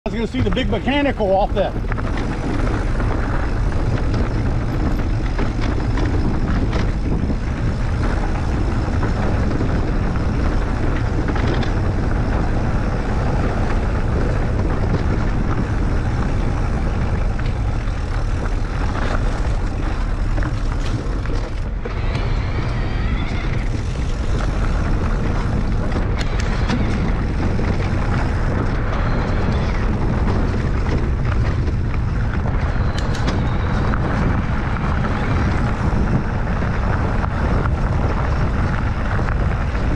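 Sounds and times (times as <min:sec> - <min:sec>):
wind rush on microphone: 0:00.0 - 0:39.9
tyres rolling over gravel: 0:00.1 - 0:39.9.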